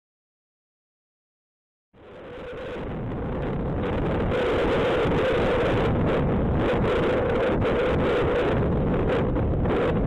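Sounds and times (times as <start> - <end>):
wind on microphone: 2.0 - 10.0.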